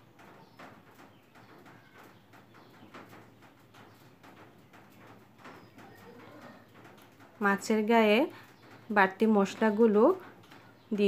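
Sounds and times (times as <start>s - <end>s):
oil crackling around frying fish: 0.0s - 11.0s.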